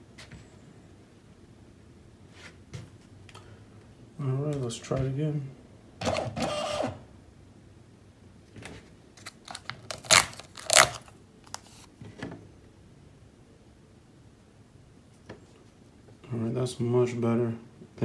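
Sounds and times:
label printer buzzing: 6.0 - 7.0
label tearing clicks and snaps: 9.2 - 11.9.

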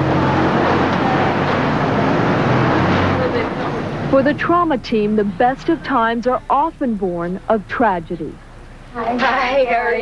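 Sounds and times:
engine low hum: 0.0 - 10.0.

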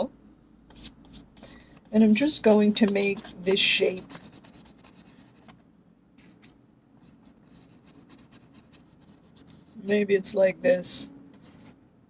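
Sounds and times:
brush scratching on paper: 0.7 - 5.4, 6.2 - 10.0, 11.4 - 11.8.

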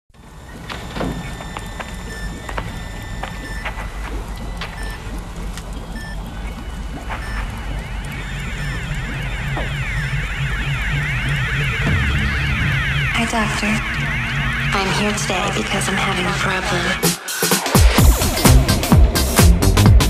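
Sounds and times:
low pulsing bass: 0.3 - 17.1
thin steady bleeps: 0.4 - 17.1
synth sweeps: 1.2 - 18.4
electronic dance music: 8.3 - 20.0.

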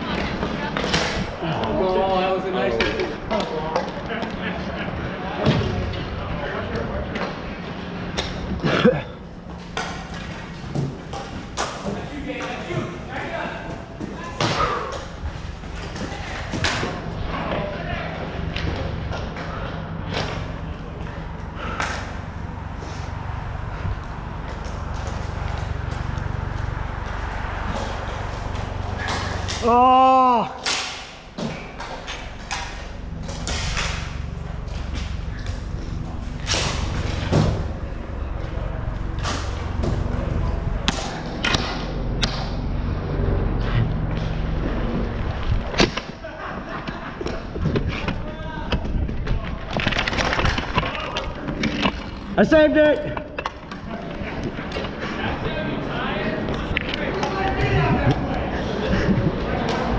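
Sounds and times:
steady low rumble: 0.0 - 29.7, 31.0 - 59.9
players calling: 0.0 - 49.6, 50.4 - 59.9.

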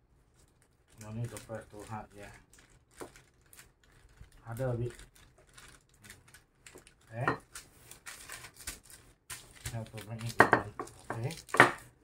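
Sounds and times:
paper rustling: 0.3 - 11.5.

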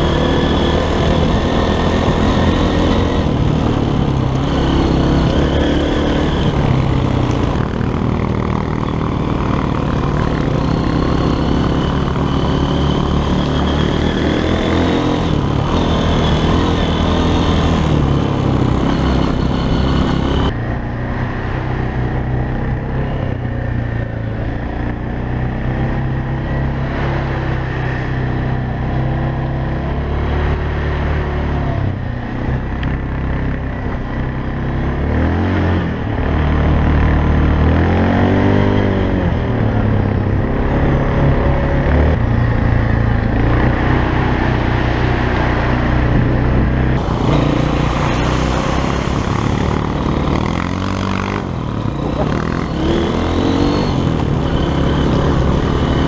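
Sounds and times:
quad bike engine revving: 0.0 - 56.0.

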